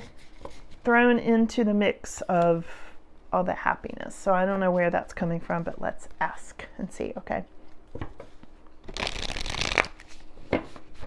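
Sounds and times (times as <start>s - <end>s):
cards fluttering while shuffled: 8.9s - 11.0s.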